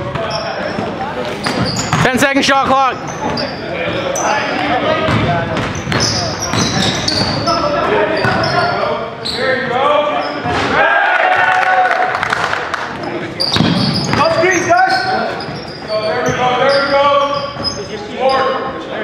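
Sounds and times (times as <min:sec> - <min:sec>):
basketball bouncing on hardwood floor: 0:05.1 - 0:07.4, 0:13.6 - 0:14.2.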